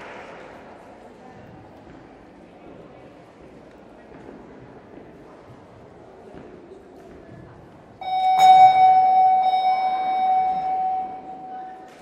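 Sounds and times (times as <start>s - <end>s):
bell-like tone: 8.0s - 12.0s.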